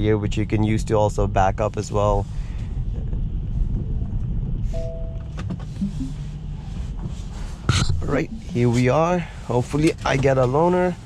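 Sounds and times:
low car cabin rumble: 0.0s - 11.0s
two-note electronic chime: 5.8s - 6.2s.

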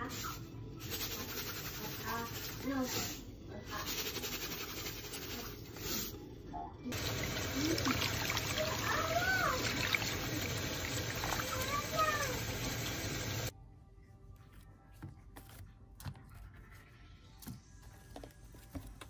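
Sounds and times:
water splashing onto plate: 7.0s - 13.5s.

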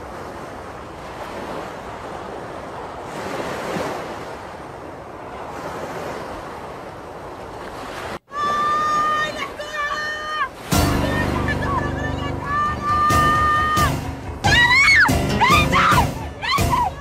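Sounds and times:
surf washing on beach: 0.0s - 14.4s.

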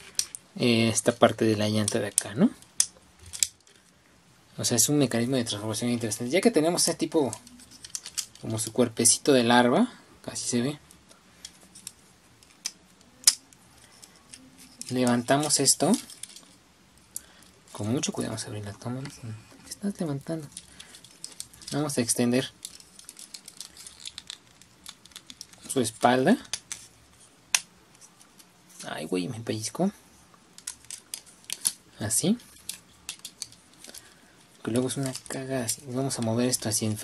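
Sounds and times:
faint handling noise: 0.0s - 37.0s
plastic toy joints clicking: 2.8s - 3.7s, 7.3s - 8.4s, 20.4s - 25.7s, 30.5s - 31.8s, 32.4s - 34.1s.

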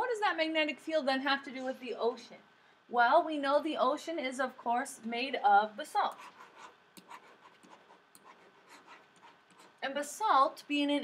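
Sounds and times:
stylus scratching on tablet: 5.9s - 10.0s.

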